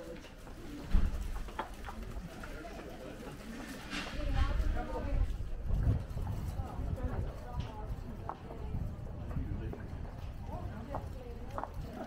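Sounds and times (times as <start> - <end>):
faint street murmur: 0.0 - 12.0.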